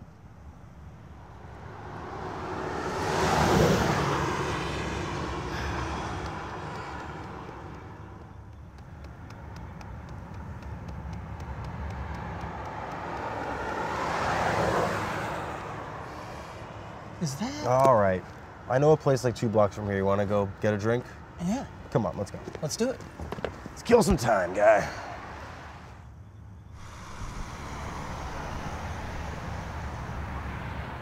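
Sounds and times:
cars passing: 0.0 - 31.0.

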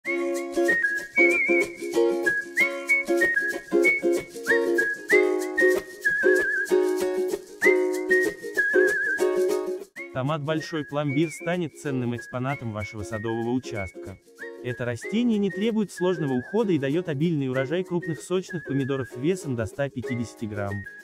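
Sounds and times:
whistled melody: 0.0 - 21.0.

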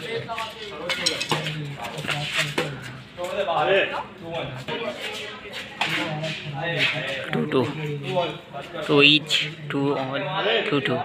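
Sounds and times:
men's voices: 0.0 - 11.0.

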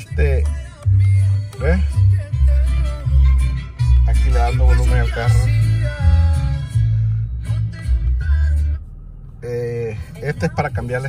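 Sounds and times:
music with heavy bass on car stereo: 0.0 - 11.0.

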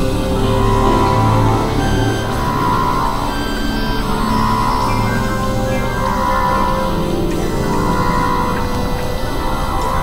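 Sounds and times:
electronic drone music: 0.0 - 10.0
low hum: 0.0 - 10.0.

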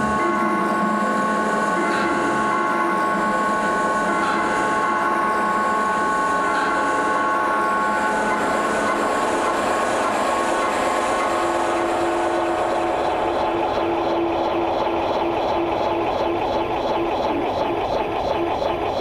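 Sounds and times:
synthesizer drone tones: 0.0 - 19.0.

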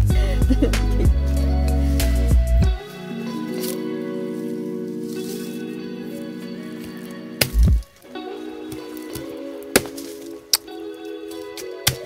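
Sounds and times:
background music: 0.0 - 12.0
blade knocks on roots: 7.4 - 7.9, 8.7 - 10.7, 11.6 - 12.0
dull thump: 7.4 - 7.9, 9.2 - 10.1.

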